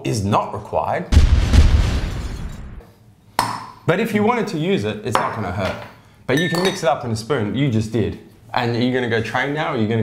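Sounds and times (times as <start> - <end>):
deep booming impact: 1.1 - 2.8.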